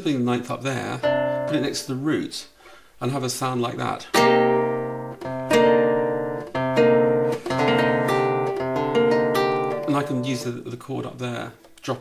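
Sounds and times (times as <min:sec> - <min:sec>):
classical guitar chords: 0:00.8 - 0:02.1, 0:04.1 - 0:10.8.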